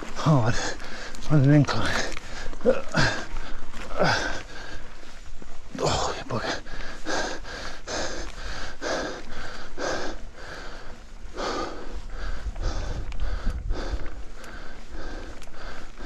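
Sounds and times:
person breathing hard: 0:00.5 - 0:01.2, 0:02.0 - 0:05.2, 0:06.0 - 0:16.0.

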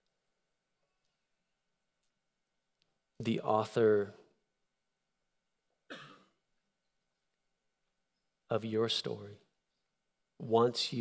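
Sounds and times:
man clearing throat: 0:05.9 - 0:06.4.

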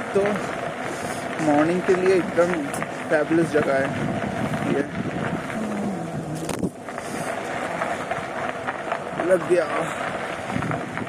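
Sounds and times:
bicycle rolling rattle: 0:00.0 - 0:11.0
wind on microphone: 0:00.0 - 0:11.0
low voice hum: 0:05.5 - 0:06.6.

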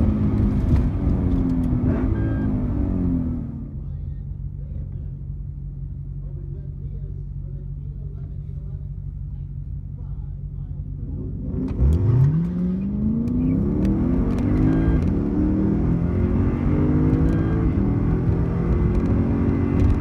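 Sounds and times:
car engine revving hard: 0:00.0 - 0:03.6, 0:11.2 - 0:20.0
car engine idling: 0:00.0 - 0:13.8.

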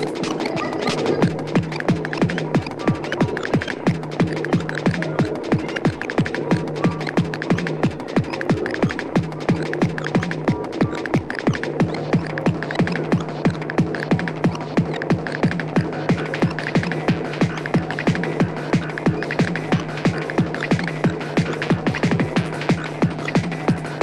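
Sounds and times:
distorted kick drum: 0:00.0 - 0:24.0.

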